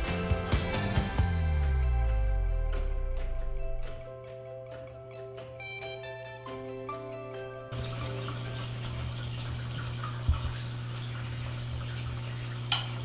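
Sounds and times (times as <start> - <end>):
water trickling and dripping: 7.7 - 13.0.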